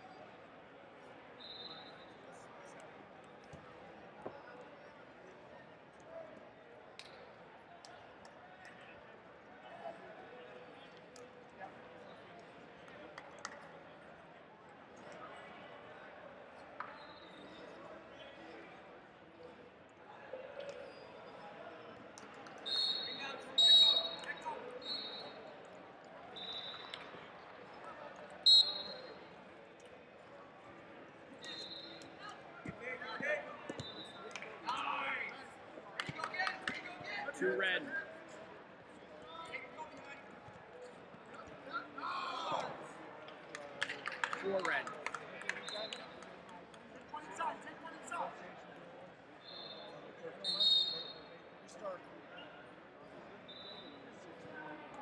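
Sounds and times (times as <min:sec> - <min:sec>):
murmur of voices in a hall: 0:00.0 - 0:55.0
referee whistle blasts: 0:01.4 - 0:02.0, 0:22.6 - 0:25.4, 0:26.4 - 0:27.0, 0:28.4 - 0:29.1, 0:31.4 - 0:32.0, 0:49.4 - 0:51.2.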